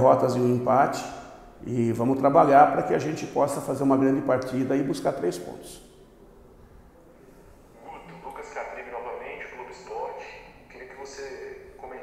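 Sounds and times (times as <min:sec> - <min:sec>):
person talking: 0:07.8 - 0:12.0.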